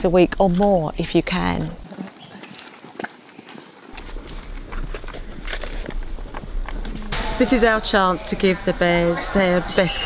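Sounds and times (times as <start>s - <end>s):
footsteps on paved path: 0.3s - 10.0s.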